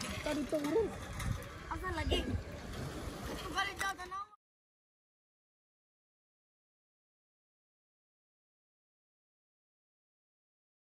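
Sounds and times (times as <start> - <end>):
children calling and chattering: 0.0 - 2.6.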